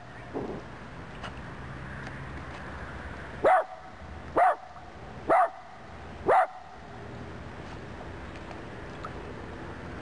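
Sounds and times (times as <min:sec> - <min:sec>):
dog barking: 0:03.4 - 0:03.7, 0:04.4 - 0:04.6, 0:05.3 - 0:05.6, 0:06.3 - 0:06.6.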